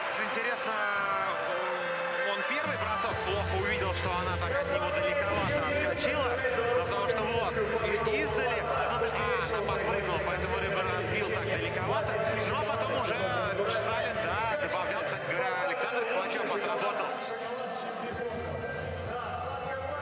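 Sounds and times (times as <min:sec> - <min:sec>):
man talking: 0:02.2 - 0:20.0.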